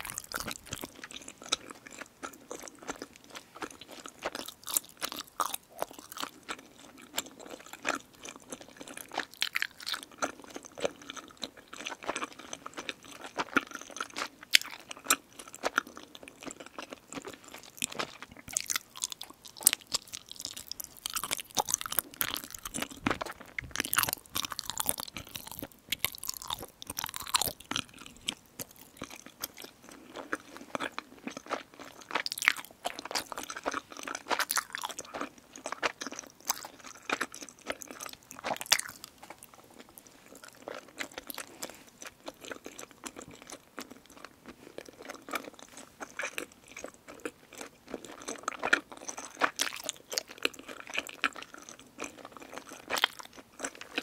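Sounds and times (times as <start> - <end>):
chewing sticky rice cakes: 0.0 - 54.0.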